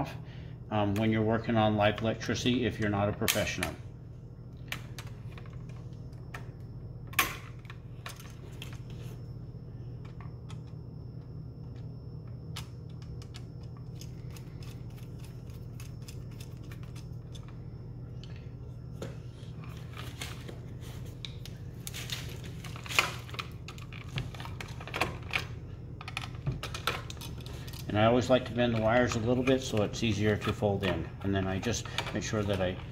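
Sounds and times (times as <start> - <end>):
steady low hum: 0.0 - 32.9.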